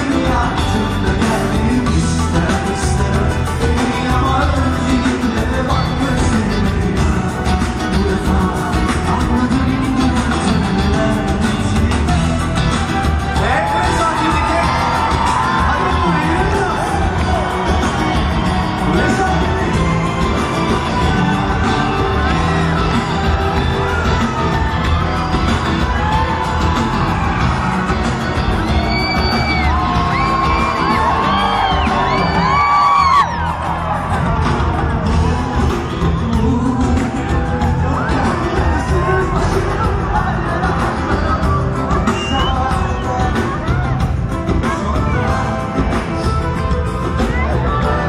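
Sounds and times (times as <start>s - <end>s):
man singing through a pa: 0.0s - 12.5s, 35.9s - 44.0s
live pop band playing: 0.0s - 48.0s
audience whooping and shouting: 12.6s - 48.0s.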